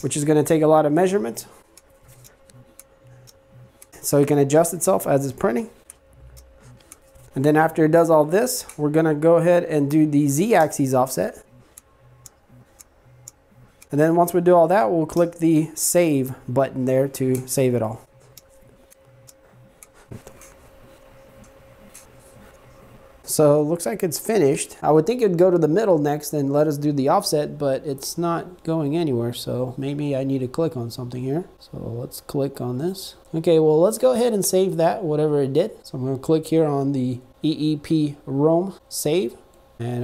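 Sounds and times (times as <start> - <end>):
stepper motors buzzing: 0.0 - 14.9, 16.7 - 23.3
faint steady whine: 0.0 - 40.0
print head light ticks: 1.7 - 4.0, 5.8 - 7.1, 11.4 - 14.0, 18.3 - 20.5
faint probe clicks: 11.6 - 13.9, 18.3 - 20.6.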